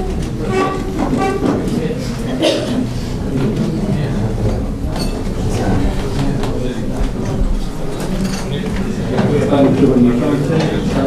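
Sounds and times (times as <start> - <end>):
steady low rumbling noise: 0.0 - 11.0.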